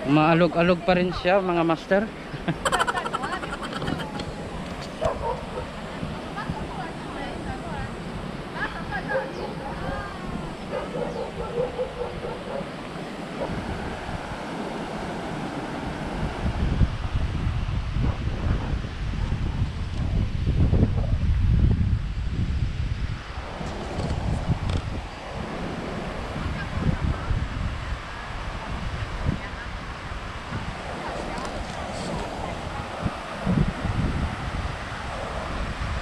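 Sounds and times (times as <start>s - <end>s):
wind buffeting microphone: 2.3s - 36.0s.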